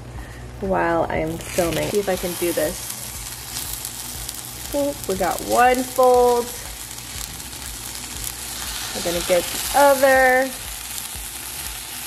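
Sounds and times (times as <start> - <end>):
omelet sizzling in frying pan: 1.3 - 12.0.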